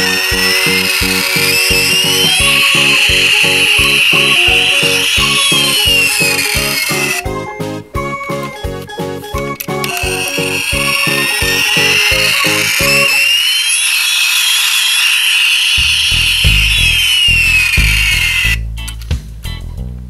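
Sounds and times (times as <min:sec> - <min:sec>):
toy jet engine whine: 0:00.0 - 0:07.4, 0:09.4 - 0:18.6
background music: 0:00.0 - 0:13.3.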